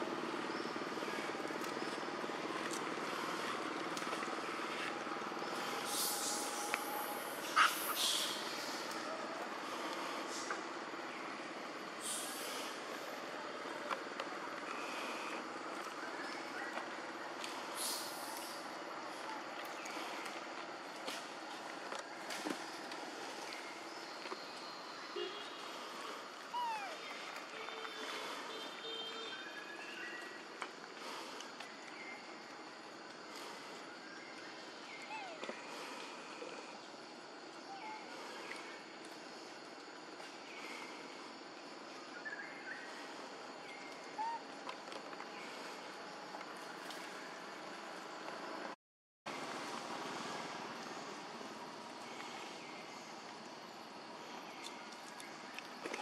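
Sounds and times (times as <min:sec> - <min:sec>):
outdoor background noise: 0:00.0 - 0:56.0.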